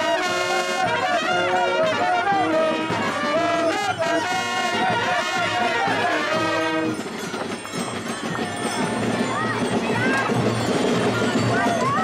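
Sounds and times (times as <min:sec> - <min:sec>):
brass band chord: 0:00.0 - 0:07.0
crowd noise: 0:00.0 - 0:12.0.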